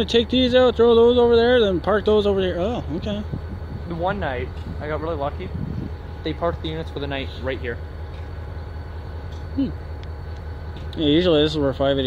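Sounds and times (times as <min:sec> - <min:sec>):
diesel locomotives idling: 0:00.0 - 0:12.0.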